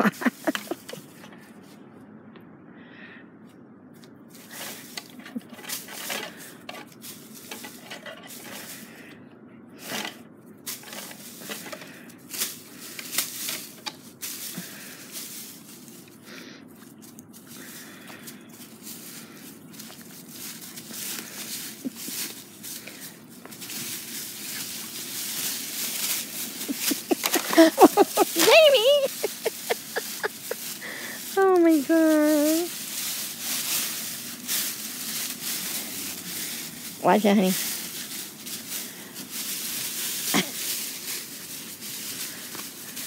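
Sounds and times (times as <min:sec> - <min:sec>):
dog paws on leaves: 0:00.0 - 0:01.8, 0:04.2 - 0:09.1, 0:09.8 - 0:43.0
footsteps crunching dry leaves: 0:00.0 - 0:01.8, 0:04.2 - 0:09.1, 0:09.8 - 0:43.0.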